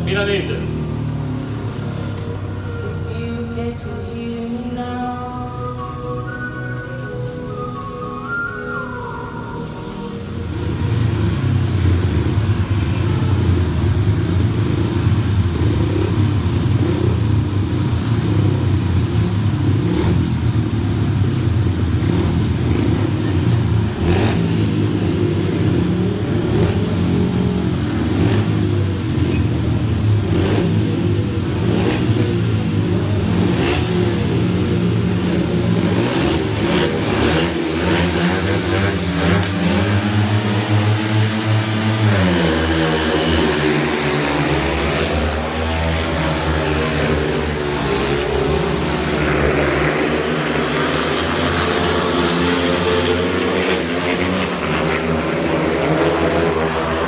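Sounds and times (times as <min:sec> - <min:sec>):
motorcycles revving and accelerating: 0:00.0 - 0:02.4, 0:09.6 - 0:57.0.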